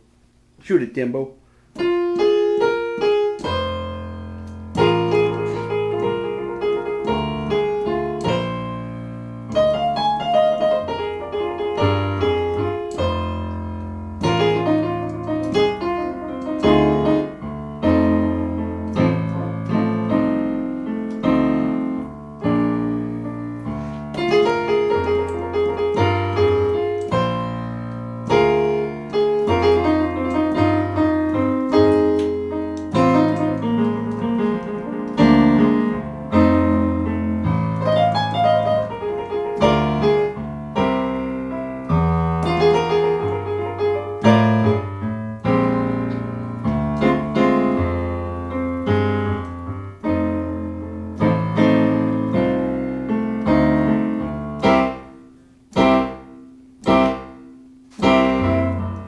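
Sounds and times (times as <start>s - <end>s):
digital piano blues: 0.0s - 59.0s.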